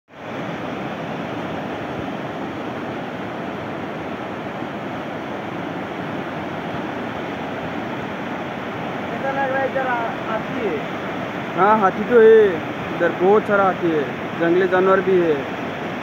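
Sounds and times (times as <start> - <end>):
river rushing over rapids: 0.1 - 16.0.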